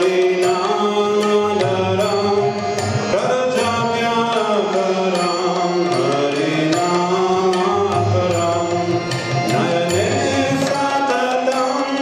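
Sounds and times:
harmonium chords: 0:00.0 - 0:12.0.

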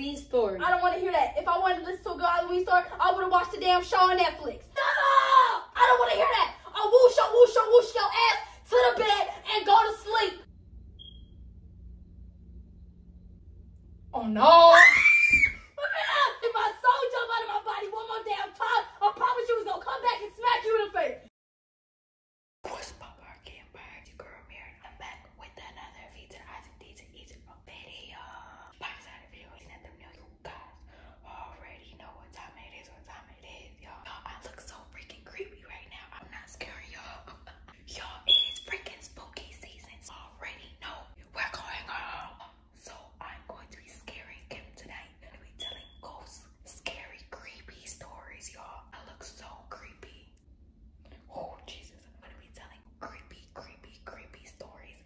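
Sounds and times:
woman whispering: 0:22.6 - 0:50.3, 0:51.0 - 0:55.0.

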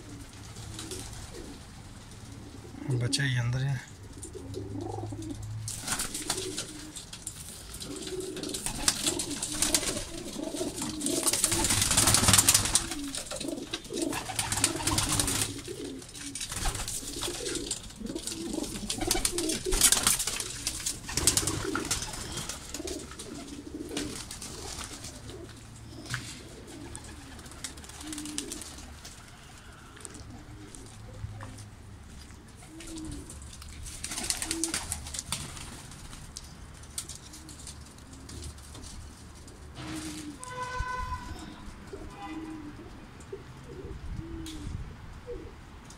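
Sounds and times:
pigeons cooing: 0:00.0 - 0:35.8, 0:36.9 - 0:45.9.

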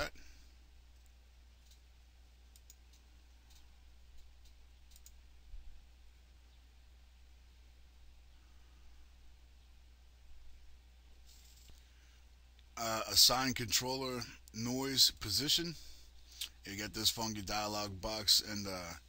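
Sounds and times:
steady low hum: 0:00.0 - 0:19.0
faint computer mouse clicks: 0:02.5 - 0:05.2.

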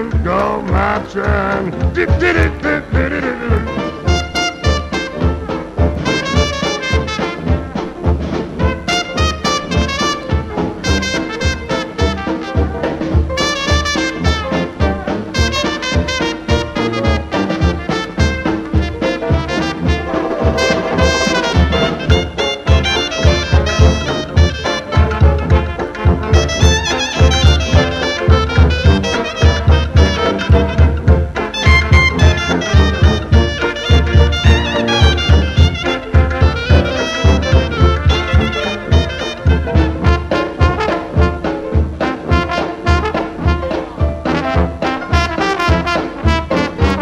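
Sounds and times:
dixieland jazz band playing: 0:00.0 - 0:47.0
steady drum thumps: 0:00.0 - 0:47.0
trombone: 0:00.0 - 0:47.0
trumpet: 0:00.0 - 0:47.0.

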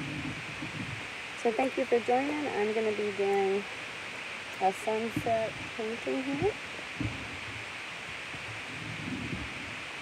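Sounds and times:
background hiss: 0:00.0 - 0:10.0
soft rustles and knocks: 0:05.0 - 0:09.8.

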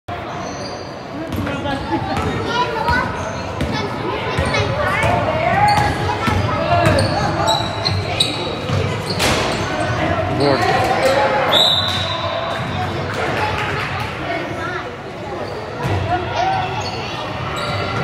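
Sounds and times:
voices in large hall: 0:00.1 - 0:18.0.

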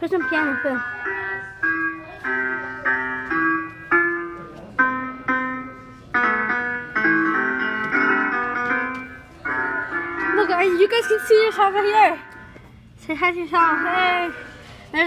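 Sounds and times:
electronic piano notes: 0:00.0 - 0:12.5, 0:13.1 - 0:14.6.

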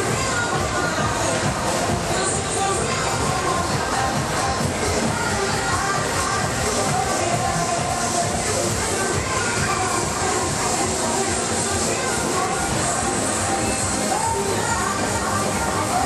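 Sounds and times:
fairground ride music: 0:00.0 - 0:16.0.

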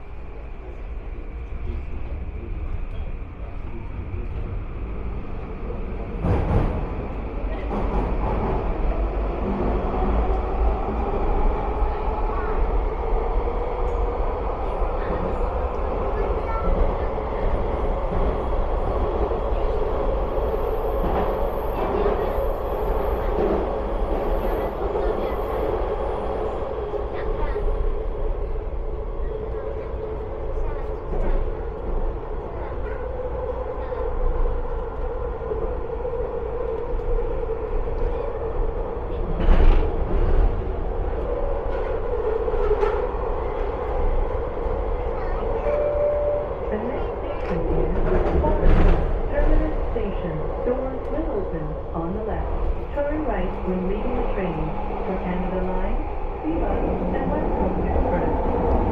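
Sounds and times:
train wheels rumbling: 0:00.0 - 0:58.9.

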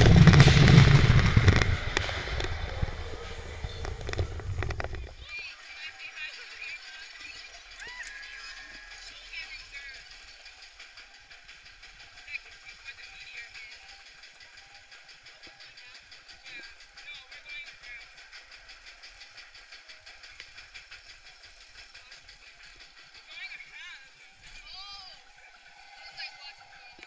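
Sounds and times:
amusement ride running: 0:00.0 - 0:27.0
fast even ticking: 0:00.0 - 0:27.0
faint voices: 0:01.2 - 0:27.0.

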